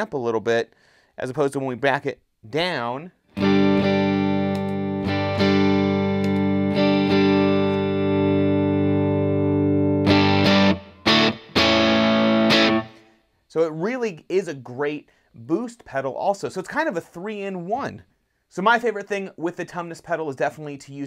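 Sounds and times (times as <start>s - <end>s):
overdriven electric guitar chords: 3.3s - 13.1s.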